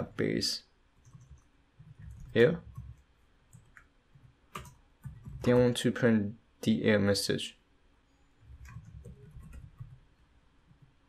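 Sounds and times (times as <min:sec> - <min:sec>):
faint keyboard keystrokes: 0:01.0 - 0:05.8, 0:08.4 - 0:10.0.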